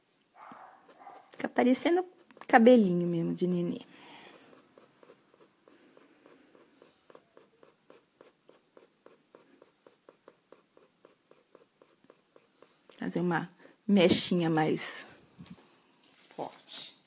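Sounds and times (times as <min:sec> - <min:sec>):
colored pencil scratching on paper: 0:00.5 - 0:15.0.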